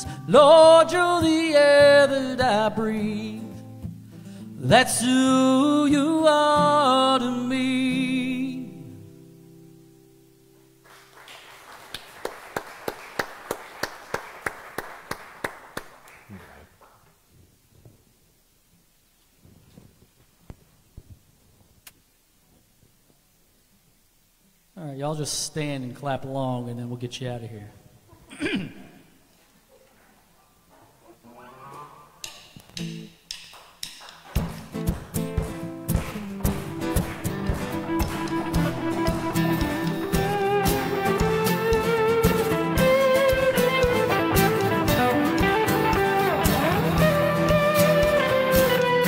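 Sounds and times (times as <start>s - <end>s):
acoustic guitar strumming chords: 0.0s - 10.8s, 34.4s - 49.0s
congregation applauding: 10.8s - 17.0s, 33.5s - 49.0s
steady hand clapping: 10.9s - 17.0s, 32.2s - 49.0s.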